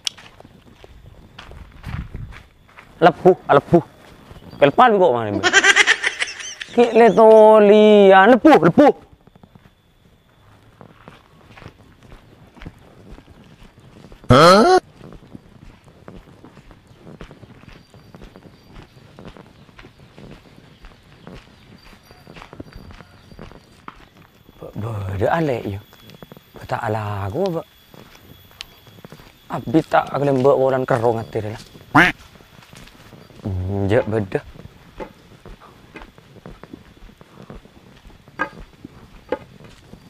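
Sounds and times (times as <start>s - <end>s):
running footsteps on dirt path: 0.0s - 40.0s
wavering bleat-like cry: 14.3s - 14.8s.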